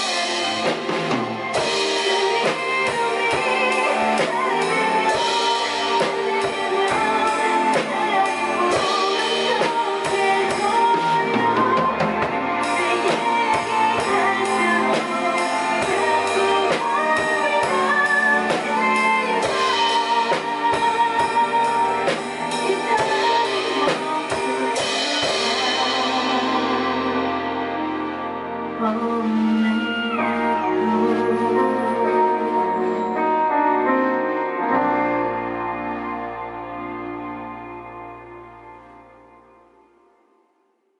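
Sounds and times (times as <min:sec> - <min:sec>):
drum kit playing: 0:00.0 - 0:37.1
pop ballad backing track: 0:00.0 - 0:39.9.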